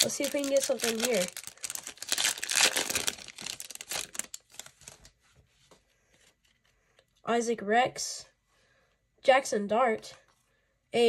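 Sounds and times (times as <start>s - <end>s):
cards being handled: 0.0s - 5.1s
foil wrapper crinkling and tearing: 0.0s - 5.1s.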